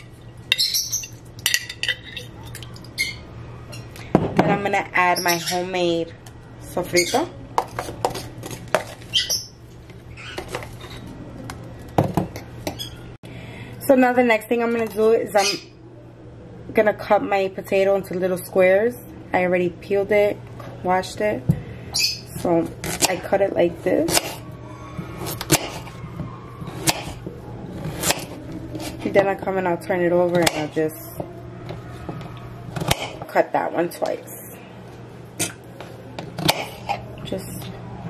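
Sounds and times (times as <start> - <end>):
knife slicing potato on wood: 25.2 - 25.9.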